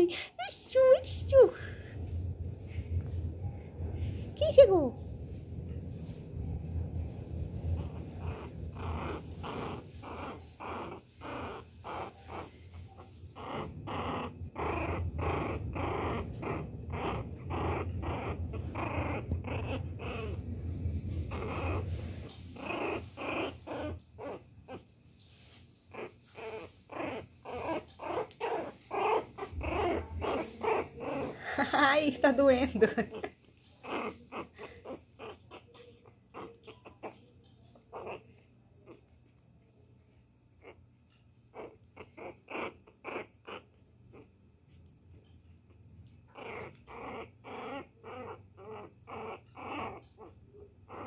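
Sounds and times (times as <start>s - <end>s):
puppy play-growling: 0.6s - 51.0s.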